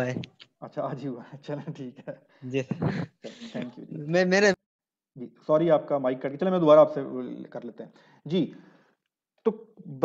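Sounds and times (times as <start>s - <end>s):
person talking: 2.5s - 4.6s.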